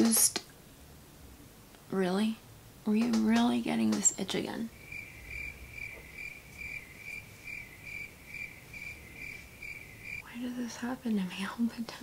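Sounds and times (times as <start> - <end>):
cricket chirping: 4.0 - 10.3.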